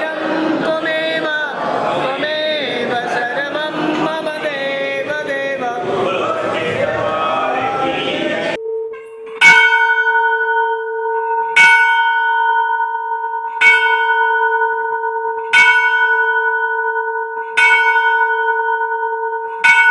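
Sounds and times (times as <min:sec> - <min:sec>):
bell strikes ringing: 0:07.6 - 0:19.9.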